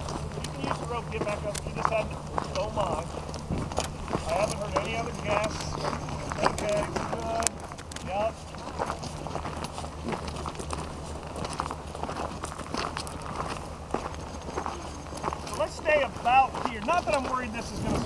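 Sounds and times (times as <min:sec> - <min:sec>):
people talking: 0:00.0 - 0:03.3, 0:04.1 - 0:09.6, 0:14.5 - 0:18.0
footsteps on gravel: 0:00.0 - 0:18.0.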